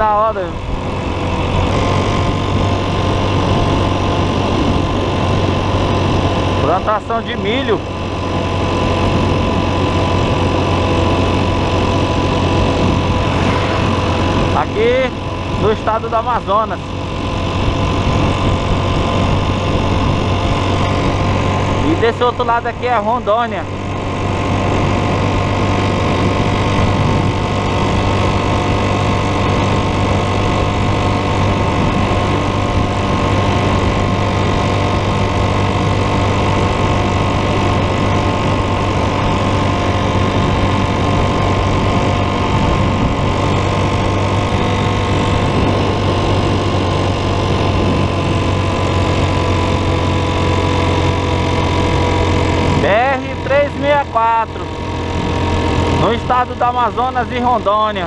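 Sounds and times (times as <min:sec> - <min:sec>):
motorcycle engine cruising: 0:00.0 - 0:58.0
wind and road noise: 0:00.0 - 0:58.0
man speaking: 0:14.5 - 0:16.8, 0:21.8 - 0:23.7, 0:52.8 - 0:54.7, 0:56.0 - 0:58.0.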